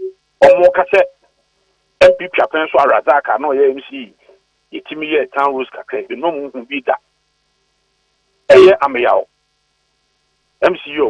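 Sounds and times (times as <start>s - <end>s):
man speaking over telephone: 0.4s - 1.2s, 2.0s - 7.1s, 8.5s - 9.3s, 10.6s - 11.0s.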